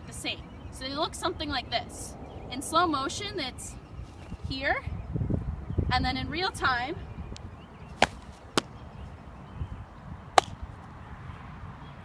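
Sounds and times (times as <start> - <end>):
softball smacking into gloves: 8.0 - 8.7, 10.4 - 10.6.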